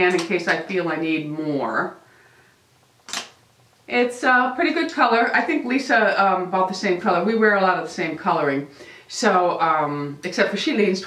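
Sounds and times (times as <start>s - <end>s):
sharp click: 3.0s - 3.4s.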